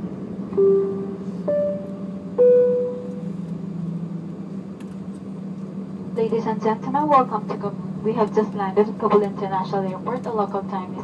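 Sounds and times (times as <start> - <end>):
airliner cabin hum: 0.0 - 11.0
clear ringing tone: 0.6 - 3.3.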